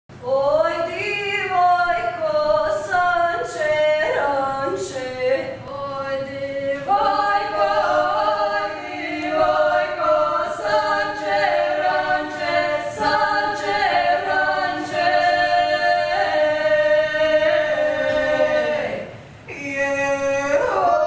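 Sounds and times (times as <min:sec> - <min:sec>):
women singing a cappella: 0:00.2 - 0:21.0.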